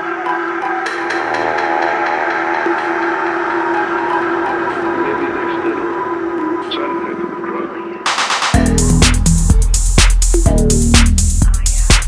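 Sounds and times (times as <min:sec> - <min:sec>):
sustained synth chords: 0:00.4 - 0:11.2
synth sweep: 0:00.8 - 0:07.4.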